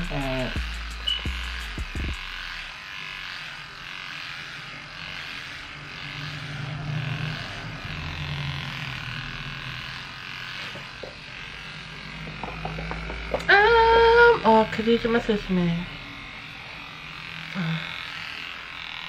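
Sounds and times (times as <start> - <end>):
electric hair clipper buzzing: 0.0 - 19.0.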